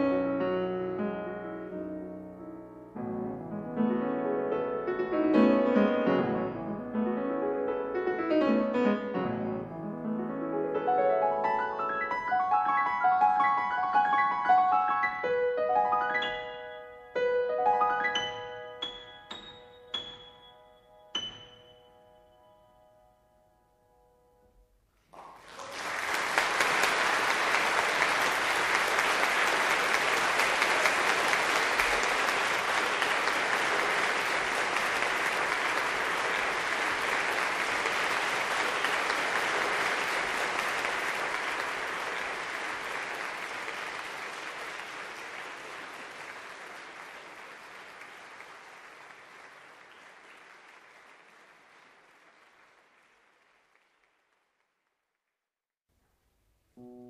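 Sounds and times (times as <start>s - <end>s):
audience applause: 25.0s - 54.8s.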